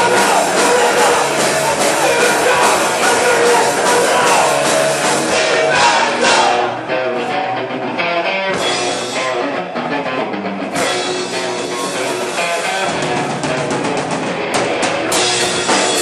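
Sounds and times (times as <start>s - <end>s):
drum kit: 0.0s - 6.8s, 8.5s - 16.0s
distorted electric guitars: 0.0s - 16.0s.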